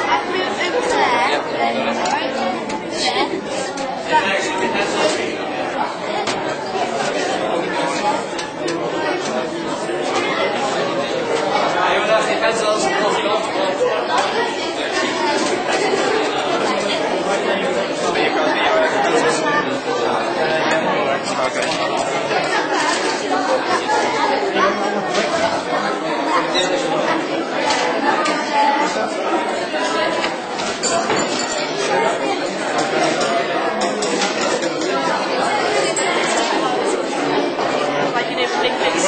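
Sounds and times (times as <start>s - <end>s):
children's voices chattering: 0.0s - 39.0s.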